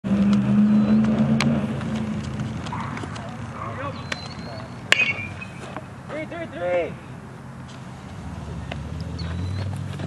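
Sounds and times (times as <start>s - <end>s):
low vehicle hum: 0.0s - 6.2s, 6.8s - 10.0s.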